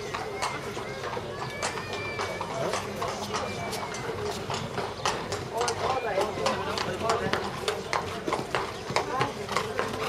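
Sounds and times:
horse hoofbeats on sand: 0.0 - 10.0
murmur of voices: 0.0 - 10.0.

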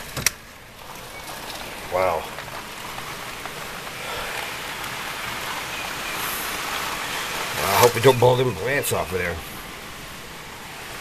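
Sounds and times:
wind-driven rain hiss: 0.0 - 11.0.

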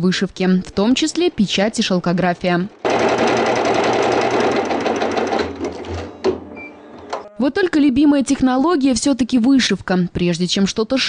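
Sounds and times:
embroidery machine needle chatter: 0.4 - 7.3.

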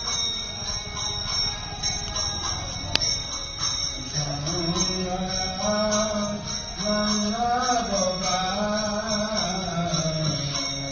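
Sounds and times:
person chanting mantra: 4.0 - 10.9.

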